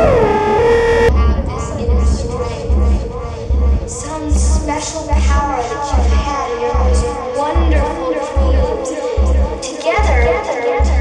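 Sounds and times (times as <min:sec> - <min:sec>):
synth tone sliding down: 0:00.0 - 0:01.2
deep bass pulses: 0:00.0 - 0:11.0.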